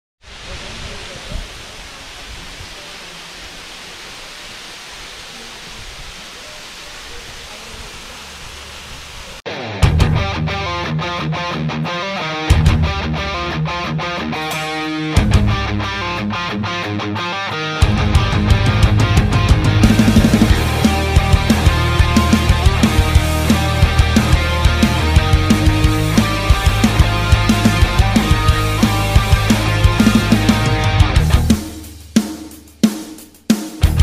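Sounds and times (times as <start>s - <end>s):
waterfall rushing: 0.2s - 9.5s, 13.1s - 31.2s
rock music with strong beat: 9.5s - 34.0s.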